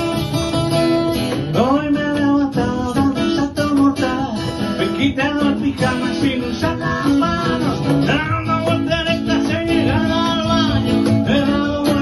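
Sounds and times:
acoustic guitars strummed: 0.0s - 12.0s
cajon beat: 0.0s - 12.0s
man singing: 1.4s - 12.0s.

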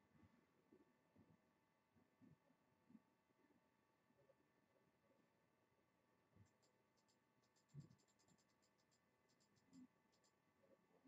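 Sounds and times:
faint high ticks: 6.4s - 10.4s.

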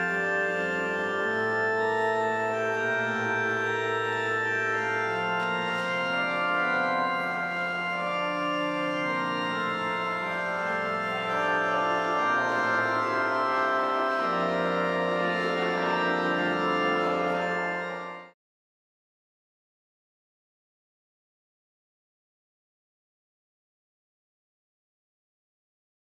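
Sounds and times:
church organ playing chords: 0.0s - 18.4s.

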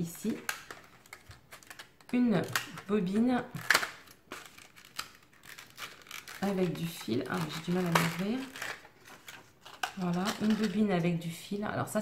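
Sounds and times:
plastic blister pack crinkling: 0.0s - 11.0s.

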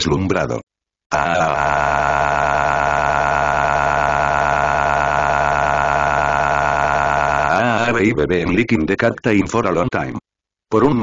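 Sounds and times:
synthetic voice holding a cry: 1.1s - 8.0s.

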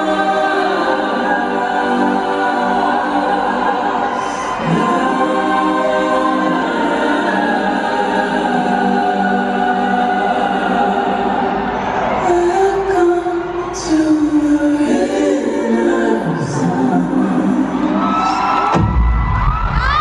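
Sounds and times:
choir singing held chords: 0.0s - 18.9s.

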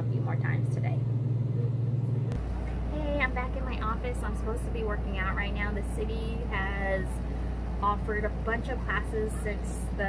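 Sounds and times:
air conditioner humming: 0.0s - 10.0s
low room hum: 0.0s - 10.0s.

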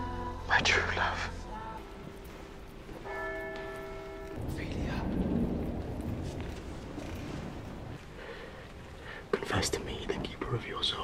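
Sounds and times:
church bell strike: 3.0s - 6.7s
low rumble: 4.0s - 11.0s.

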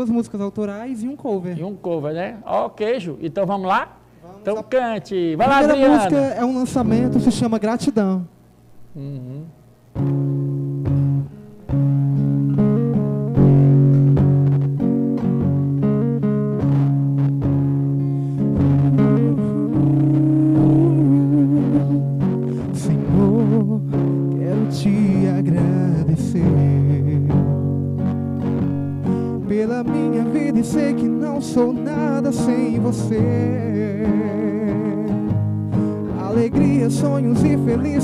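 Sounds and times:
acoustic guitar playing: 5.4s - 7.8s, 8.6s - 38.0s
wavering melody with vibrato: 18.6s - 22.4s.

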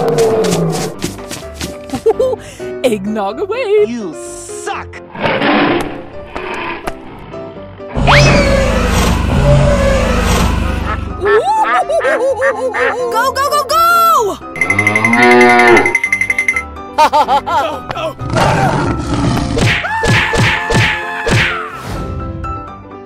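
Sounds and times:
background music: 0.0s - 23.0s
cartoon dinosaur roar: 8.0s - 11.0s, 18.2s - 19.6s
high-pitched cartoon voice noises: 11.2s - 14.4s.

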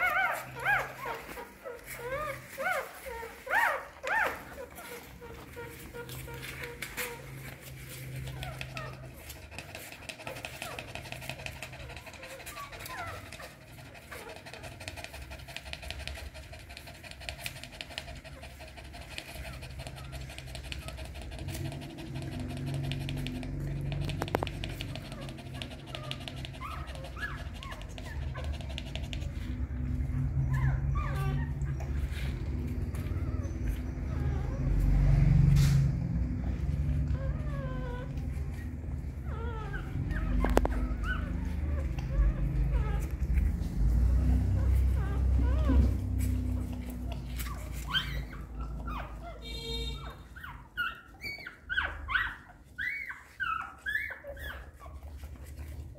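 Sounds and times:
dog panting: 0.0s - 55.9s
puppies whimpering and squeaking: 0.0s - 55.9s.

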